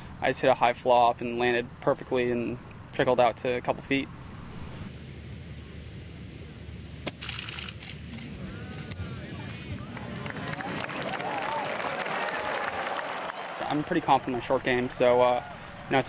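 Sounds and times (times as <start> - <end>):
crowd cheering and applause: 9.4 - 16.0.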